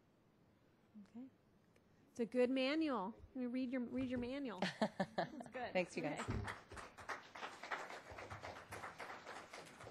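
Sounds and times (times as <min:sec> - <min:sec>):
small audience clapping: 0:05.5 - 0:09.9.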